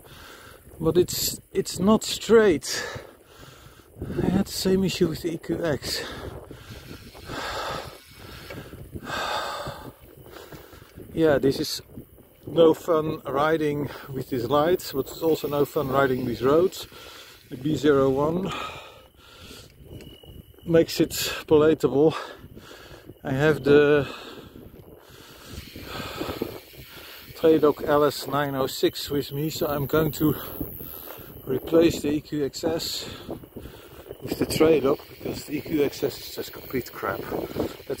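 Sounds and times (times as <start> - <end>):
cyclist breathing hard: 0.0 - 0.8, 2.6 - 5.0, 5.8 - 11.2, 13.7 - 14.2, 14.9 - 20.6, 22.0 - 23.2, 23.8 - 27.4, 30.0 - 31.5, 32.9 - 34.4, 36.1 - 37.9
bike rumbling on gravel: 0.0 - 21.4, 22.1 - 38.0
wind noise on microphone: 0.0 - 38.0.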